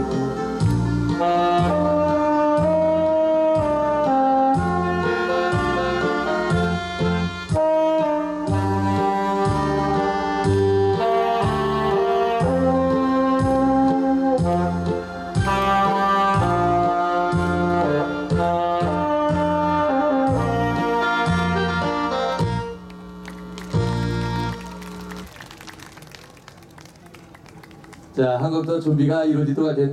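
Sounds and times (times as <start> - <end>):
backing track with bass beat: 0.0 - 25.3
tenor saxophone melody: 0.0 - 25.3.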